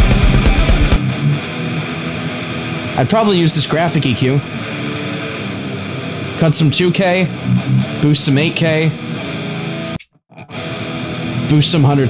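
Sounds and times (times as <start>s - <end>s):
drums: 0.0s - 1.1s
distorted electric guitar: 0.0s - 12.0s.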